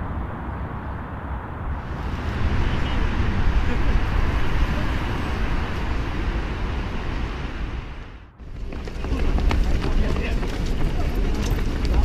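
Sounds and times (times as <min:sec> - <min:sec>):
runners' shoes slapping on asphalt: 0:08.4 - 0:12.0
voices among runners: 0:08.5 - 0:12.0.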